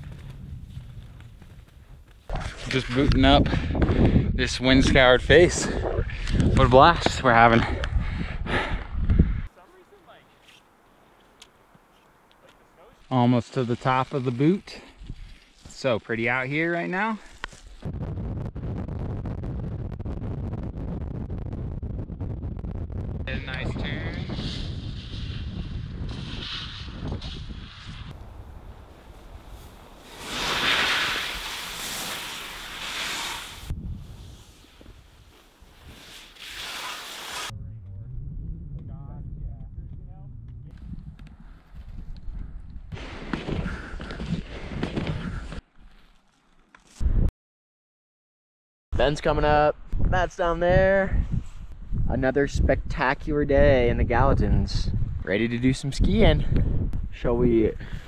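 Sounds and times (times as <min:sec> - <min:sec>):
wind buffeting microphone: 0:00.0 - 0:09.5, 0:17.8 - 0:31.5, 0:33.5 - 0:36.1, 0:37.5 - 0:45.5, 0:49.8 - 0:58.0
skis scraping through snow: 0:12.7 - 0:17.8, 0:24.0 - 0:28.2, 0:28.8 - 0:37.5.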